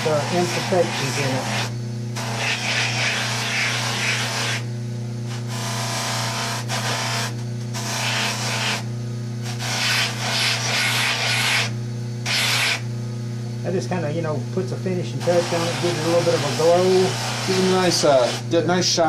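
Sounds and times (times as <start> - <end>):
bench motor humming: 0.0 - 19.0.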